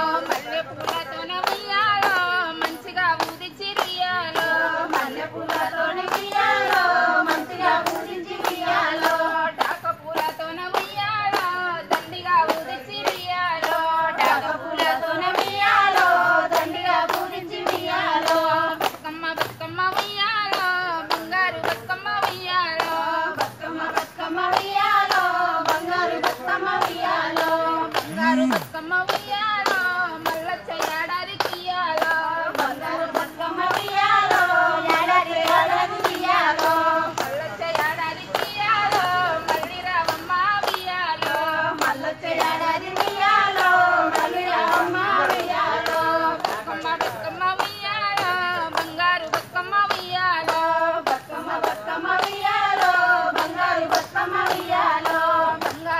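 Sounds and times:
rhythmic hand clapping: 0:00.0 - 0:55.9
women singing folk song in unison: 0:00.0 - 0:55.9.

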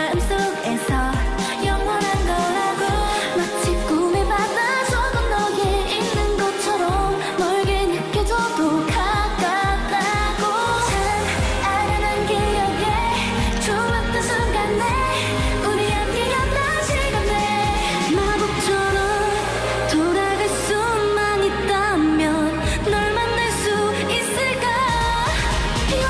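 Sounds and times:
women singing dance-pop song: 0:00.0 - 0:26.0
kick-drum beat: 0:03.7 - 0:19.2
held bass line: 0:10.7 - 0:26.0.

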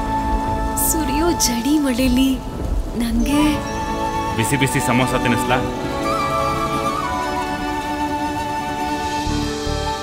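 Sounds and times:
low rumble of thunder: 0:00.0 - 0:06.0
rain falling: 0:00.0 - 0:10.0
soft background music: 0:00.0 - 0:10.0.

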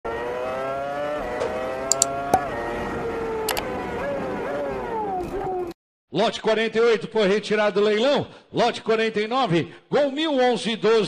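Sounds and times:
sports car engine accelerating: 0:00.1 - 0:05.7.

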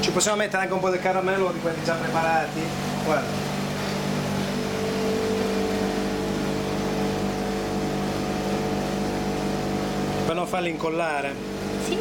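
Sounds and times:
freezer motor humming: 0:00.0 - 0:12.0.

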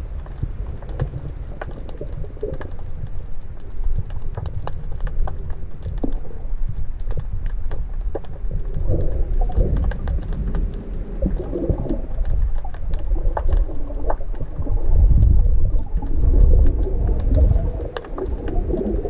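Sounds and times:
sharp clicks and crackles: 0:00.0 - 0:19.0
underwater rumble of moving water: 0:00.0 - 0:19.0
water gurgles: 0:00.0 - 0:19.0.

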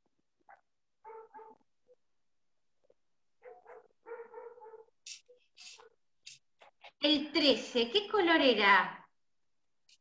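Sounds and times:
dog barking faintly: 0:00.4 - 0:02.0, 0:03.4 - 0:06.1.

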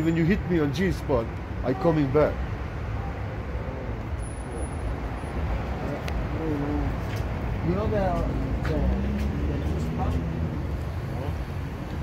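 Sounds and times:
cars passing and idling: 0:00.0 - 0:12.0.

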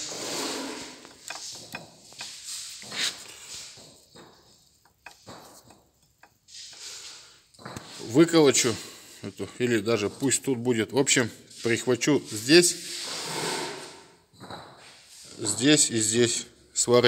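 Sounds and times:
gear clicking and knocking: 0:01.1 - 0:06.8.

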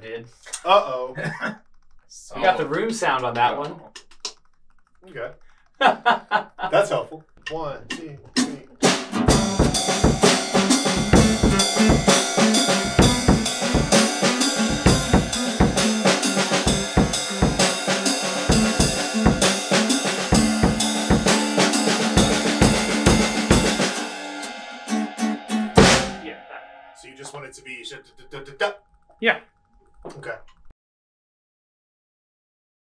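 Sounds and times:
drum kit groove: 0:07.5 - 0:26.3
acoustic guitar: 0:08.4 - 0:26.2.

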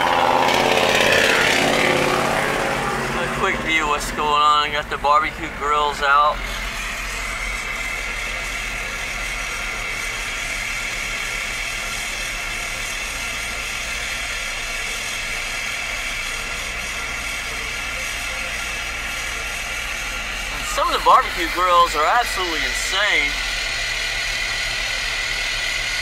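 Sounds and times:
car engine and road hum: 0:00.0 - 0:26.0.

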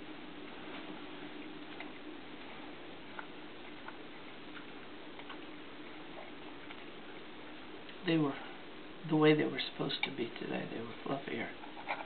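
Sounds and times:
faint steady hum and hiss: 0:00.0 - 0:12.0.

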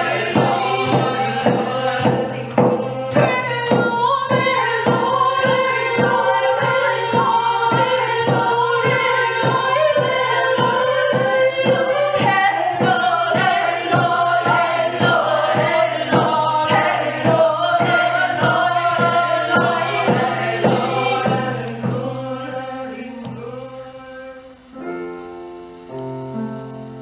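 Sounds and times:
frame drum beat: 0:00.0 - 0:23.8
women singing in harmony: 0:00.0 - 0:24.7.

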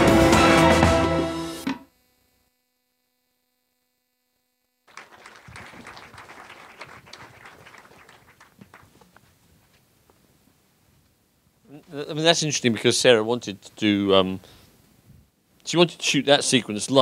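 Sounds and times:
film soundtrack music: 0:00.0 - 0:01.8
audience applause: 0:04.9 - 0:09.1.

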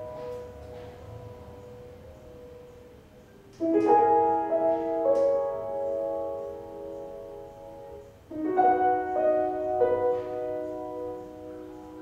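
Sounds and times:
piano chord ringing: 0:00.0 - 0:12.0.

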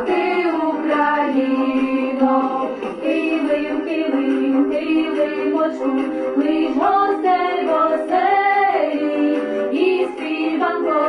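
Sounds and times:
women and girls singing unaccompanied: 0:00.0 - 0:11.0.

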